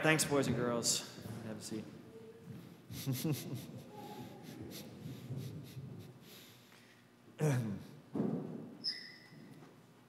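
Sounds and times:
rustling and shuffling: 1.2 - 7.0.

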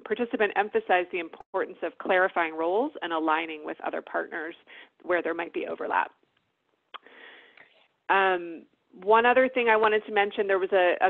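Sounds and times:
mouth click: 6.9 - 7.7.

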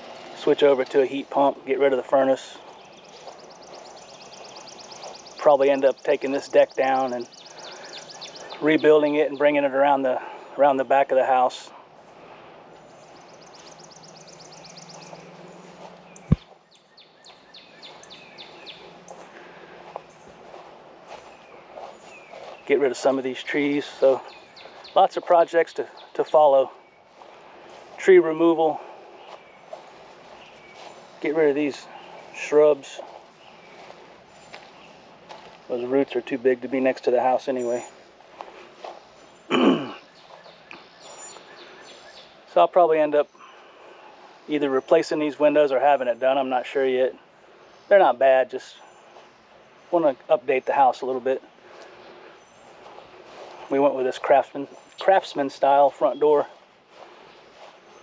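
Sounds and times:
birds singing: 0.0 - 58.0
bird chirping rapidly: 2.0 - 9.5, 12.8 - 27.2.

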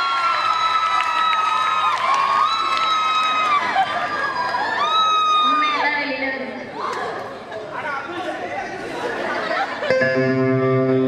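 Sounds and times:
audience chatter: 3.1 - 11.0.

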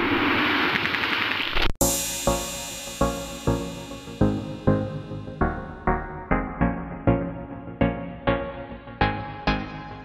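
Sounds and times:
song: 1.8 - 10.0.

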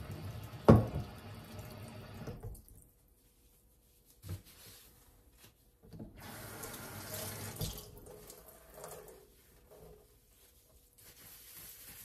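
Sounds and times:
faucet water running into sink: 0.0 - 2.6, 6.1 - 9.3.

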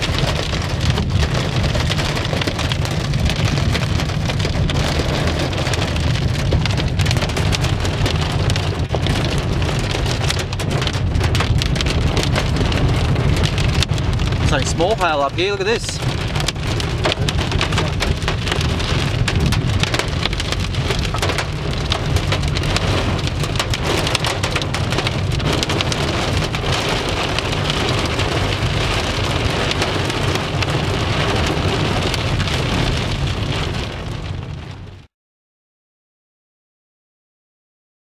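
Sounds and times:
car rumble: 0.0 - 35.1
hail and rain pelting a car: 0.0 - 35.1.

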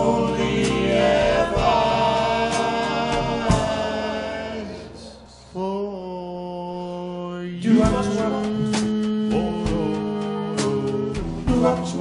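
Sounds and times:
band playing: 0.0 - 4.8, 7.7 - 12.0
loud drum hit: 0.6 - 4.0.

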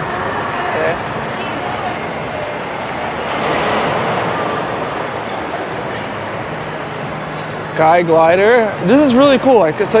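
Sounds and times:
dense crowd noise: 0.0 - 10.0.

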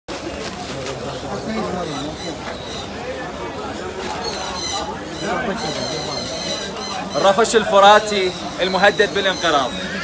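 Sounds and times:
busy outdoor background noise: 0.1 - 10.0
people talking indistinctly: 0.1 - 10.0.

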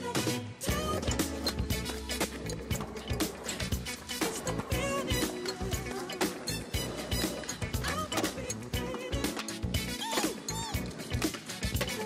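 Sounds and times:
music with steady drum beat: 0.0 - 12.0.

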